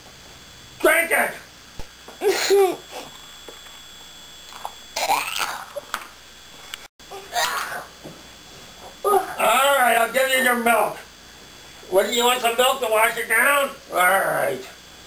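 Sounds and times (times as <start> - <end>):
person whimpering and whining: 2.2 - 3.1, 9.0 - 9.5.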